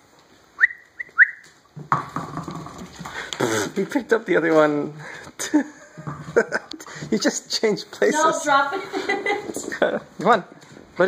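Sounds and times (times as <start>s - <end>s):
puppy claws scrabbling on floor: 1.4s - 4.0s.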